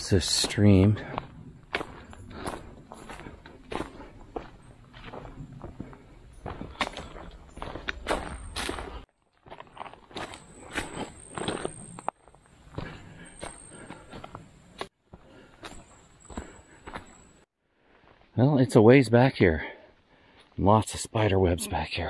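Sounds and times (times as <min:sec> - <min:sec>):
footsteps on dirt and stones: 0:00.0 - 0:18.3.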